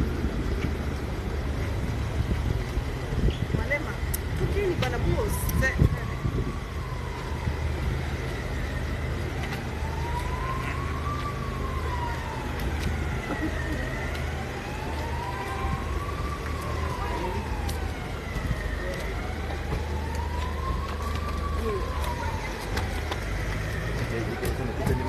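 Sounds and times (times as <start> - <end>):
emergency vehicle siren wailing: 0.0 - 25.0
low hum of street traffic: 0.0 - 25.0.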